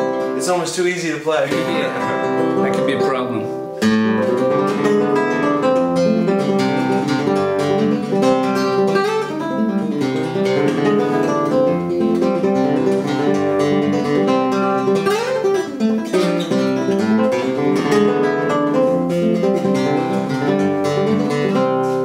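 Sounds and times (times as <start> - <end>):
fingerpicked nylon-string guitar: 0.0 - 22.0.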